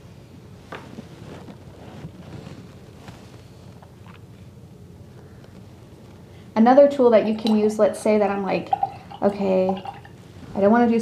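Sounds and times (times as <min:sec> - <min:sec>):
low room noise: 0:00.0 - 0:11.0.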